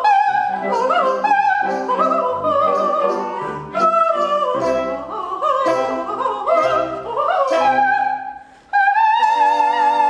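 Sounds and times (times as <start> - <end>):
orchestra playing: 0.0 - 8.4
woman singing opera: 0.0 - 10.0.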